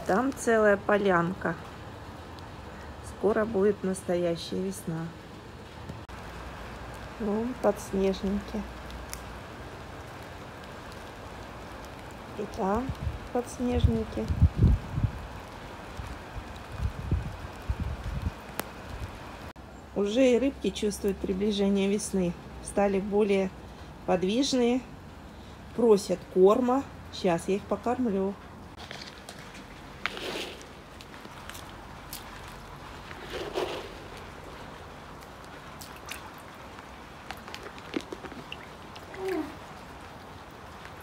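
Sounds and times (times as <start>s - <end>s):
soft hiss like light rain: 0.0s - 41.0s
pellets pattering onto water: 28.7s - 40.0s.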